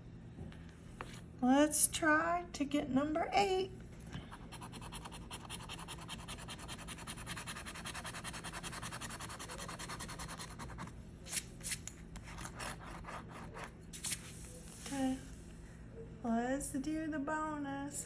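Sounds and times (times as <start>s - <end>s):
coin scratching lottery ticket: 4.6s - 10.9s.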